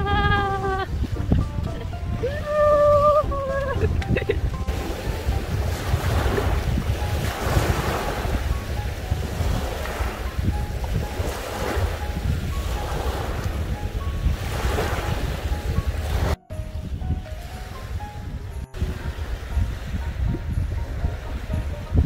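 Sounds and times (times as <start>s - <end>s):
wind buffeting microphone: 0.0s - 22.0s
small waves washing onto beach: 0.5s - 22.0s.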